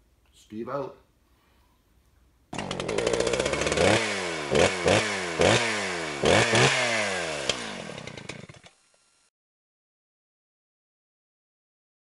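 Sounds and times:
chainsaw engine revving: 0:02.5 - 0:09.3.

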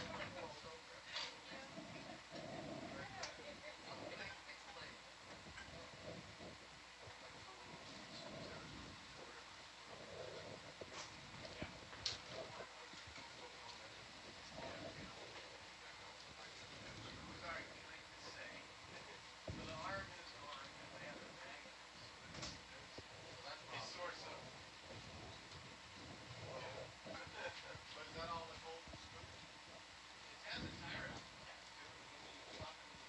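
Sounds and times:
faint indistinct voices: 0:00.0 - 0:33.0.

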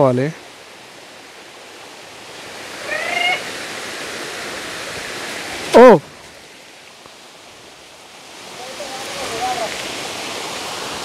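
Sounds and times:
water rushing over rock: 0:00.0 - 0:11.0.

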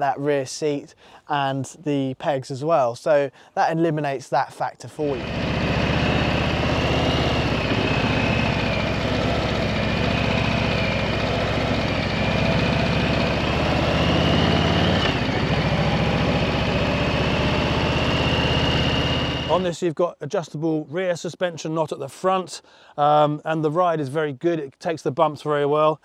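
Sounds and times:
motorcycle engine running: 0:05.1 - 0:19.6.

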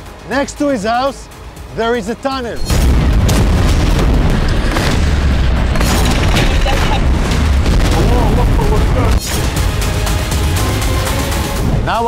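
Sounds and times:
music: 0:00.0 - 0:12.0
heavy rumble: 0:02.5 - 0:12.0
loud explosion booms: 0:02.6 - 0:09.7.

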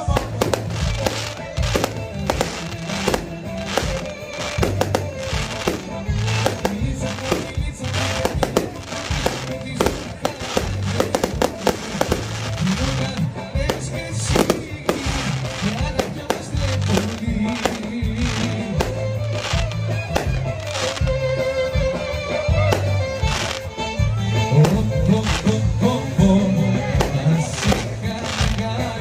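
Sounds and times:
fireworks bangs and crackles: 0:00.0 - 0:29.0
loud music: 0:00.0 - 0:29.0.

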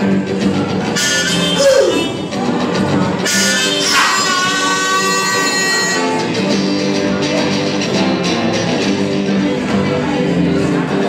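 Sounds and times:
strummed electric guitar: 0:00.0 - 0:11.0.

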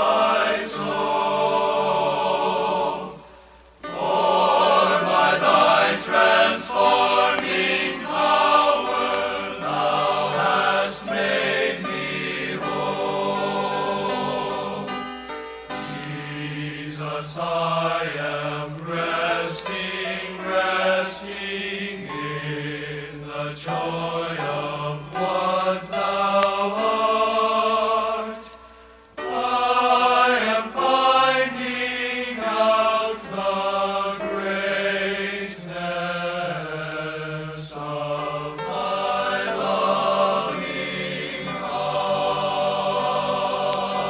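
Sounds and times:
men's choir singing a hymn: 0:00.0 - 0:28.6, 0:29.2 - 0:44.0.

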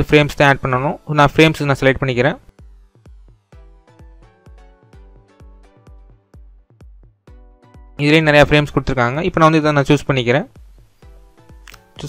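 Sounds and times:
person speaking: 0:00.0 - 0:02.5, 0:08.0 - 0:10.6, 0:11.6 - 0:12.0
faint soft background music: 0:00.0 - 0:12.0.

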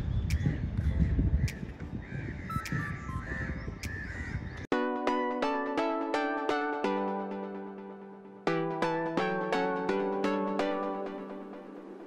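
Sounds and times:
crows cawing: 0:02.0 - 0:04.6.

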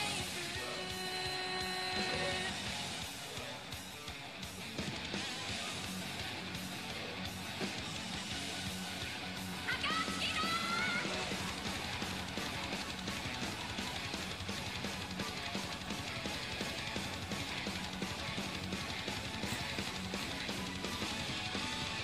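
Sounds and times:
heavy metal band playing: 0:00.0 - 0:22.0.

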